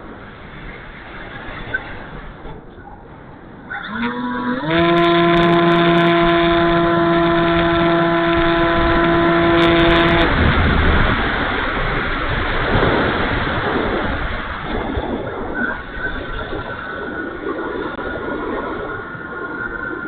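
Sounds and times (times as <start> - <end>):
wind rushing over airframe: 0.0 - 20.0
electric motor and propeller hum: 3.3 - 12.8.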